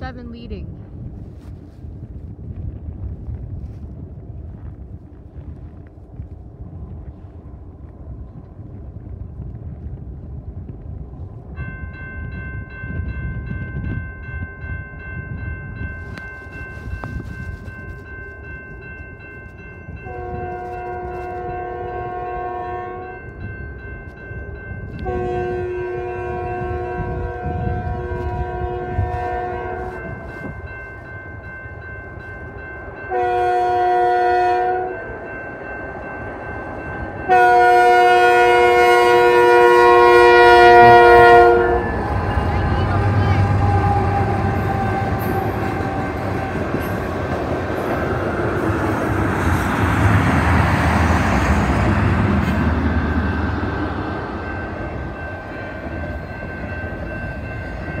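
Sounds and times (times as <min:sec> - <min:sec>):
train rumbling past: 0:00.0 - 0:58.0
crossing bell ringing: 0:11.4 - 0:58.0
locomotive air horn blasts: 0:20.0 - 0:23.2, 0:25.0 - 0:30.5, 0:33.1 - 0:35.1, 0:37.3 - 0:47.1.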